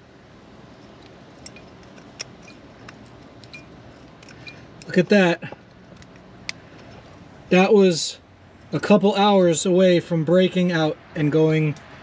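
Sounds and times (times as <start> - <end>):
low steady background noise: 0.0 - 12.0
metal filter being handled: 0.8 - 7.2.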